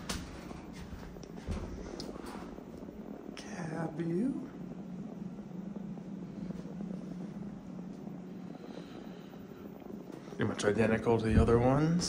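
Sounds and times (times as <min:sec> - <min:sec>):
elevator cab low hum: 0:00.0 - 0:12.0.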